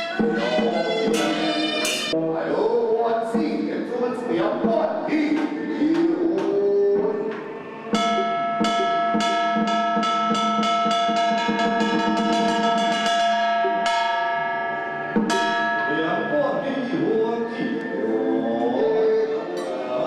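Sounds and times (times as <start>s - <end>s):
chanting: 0.0s - 14.0s, 15.1s - 20.0s
ritual bell struck in a roll: 7.6s - 20.0s.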